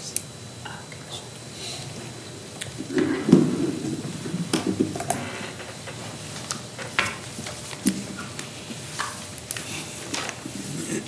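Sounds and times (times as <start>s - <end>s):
papers rustling: 2.8s - 11.0s.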